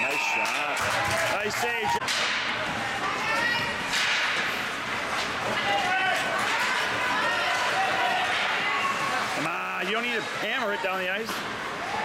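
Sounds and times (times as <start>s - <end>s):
hockey sticks and puck clacking: 2.0s - 2.8s, 3.8s - 9.4s.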